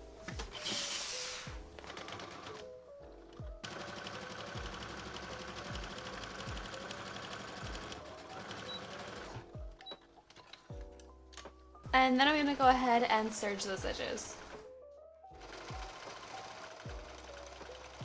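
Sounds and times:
soft background music: 0.0 - 18.0.

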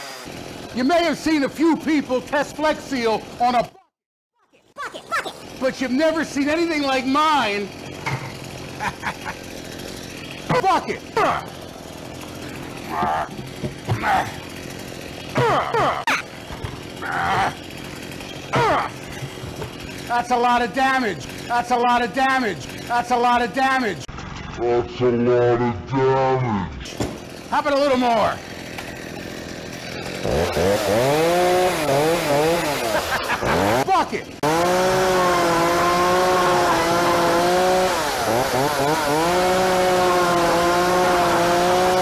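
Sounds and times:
chainsaw engine revving: 0.0 - 3.7, 5.0 - 24.8, 26.8 - 42.0
pitched vocal-like cries: 17.0 - 17.6, 18.5 - 19.0.

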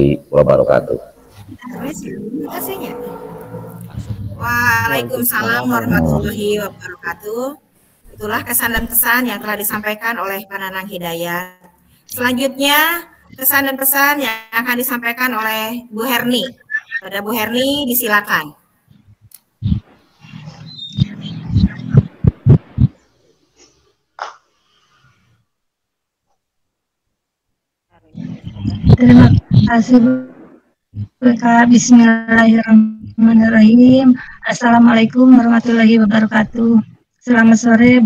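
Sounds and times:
overlapping voices over video call: 0.0 - 23.3, 24.2 - 24.5, 27.9 - 38.0
low rumbling rustling noise: 1.0 - 4.8.

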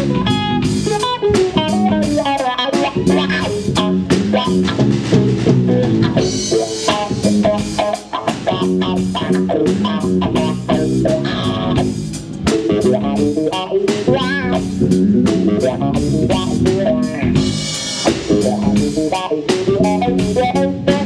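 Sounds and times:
bass guitar: 0.0 - 21.0
drum kit: 0.0 - 21.0
electric guitar picked: 0.0 - 21.0.

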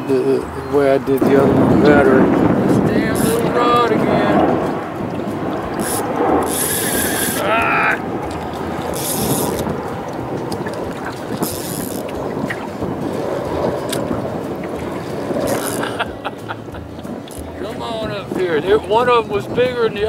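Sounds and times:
wind buffeting microphone: 0.0 - 20.0
lapping water: 0.5 - 19.8.

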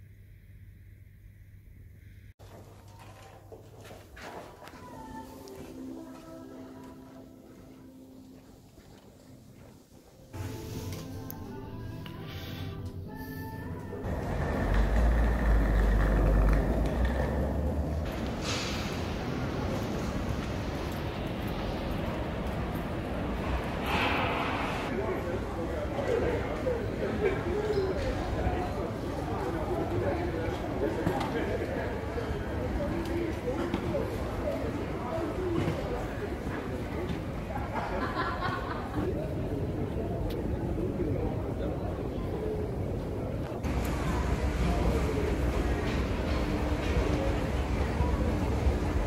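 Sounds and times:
distant voices: 13.5 - 37.4
suitcase wheels rolling on concrete: 14.0 - 18.5.

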